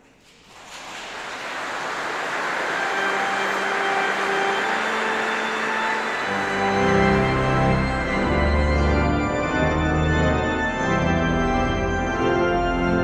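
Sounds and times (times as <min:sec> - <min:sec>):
organ music: 0:01.5 - 0:13.0.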